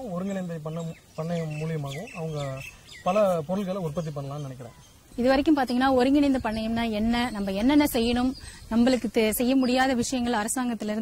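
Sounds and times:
birds chirping: 0.0s - 11.0s
voice: 0.0s - 11.0s.

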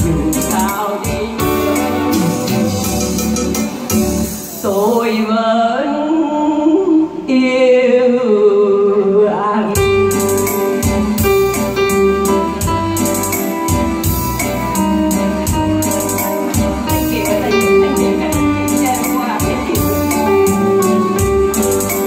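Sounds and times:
bass line: 0.0s - 4.9s, 9.8s - 22.0s
keyboard melody: 0.0s - 5.2s, 9.8s - 22.0s
drum beat: 10.2s - 22.0s.

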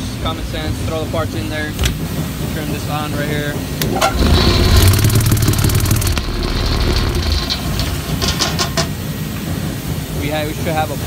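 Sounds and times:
tumbler motor rumble: 0.0s - 9.9s
sharp clicks: 3.8s - 8.0s
metal parts rattling: 4.0s - 8.8s.

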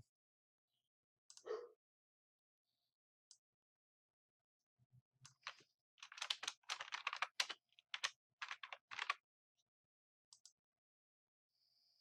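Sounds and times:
keyboard typing: 5.4s - 9.2s.

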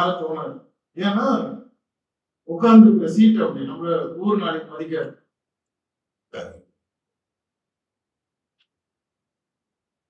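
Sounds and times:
man speaking: 0.0s - 1.6s, 2.5s - 5.1s
short vocal sound: 6.4s - 6.6s.

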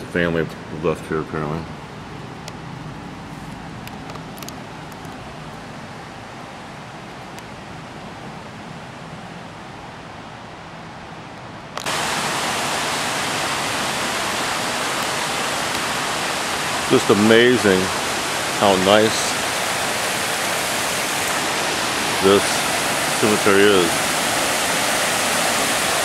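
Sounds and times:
steady rushing hiss: 11.7s - 26.0s.

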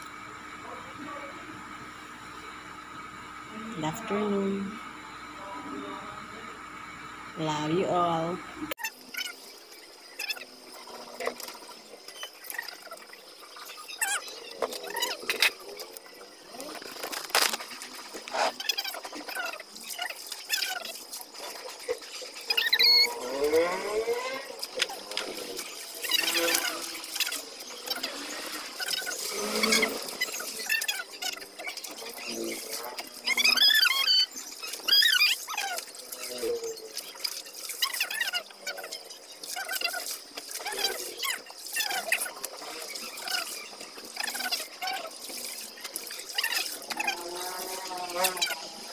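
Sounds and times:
squeaks and splashes: 8.8s - 48.9s.

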